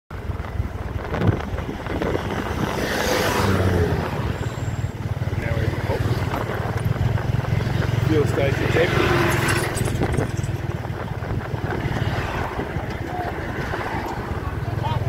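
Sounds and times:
small vehicle engine running: 0:00.1 - 0:15.0
tyres rumbling on dirt road: 0:00.1 - 0:15.0.

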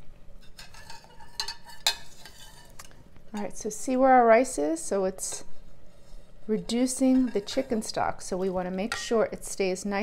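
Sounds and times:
metal ladle clinking on pot: 0:00.4 - 0:02.8.

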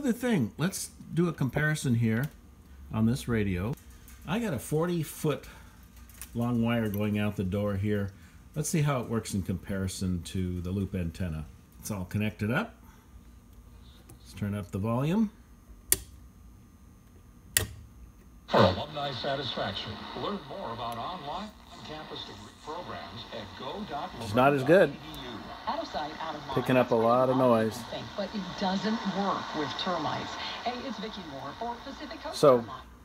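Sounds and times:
radio speech from loudspeaker: 0:18.5 - 0:32.9
static hiss: 0:18.5 - 0:33.0.

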